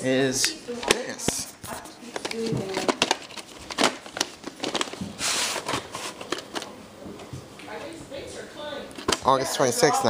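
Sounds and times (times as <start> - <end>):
rustling scrape: 3.2 - 6.4.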